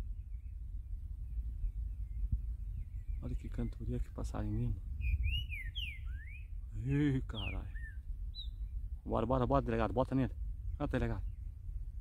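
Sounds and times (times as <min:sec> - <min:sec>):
bird whistling song: 0:01.2 - 0:03.9, 0:04.5 - 0:08.8.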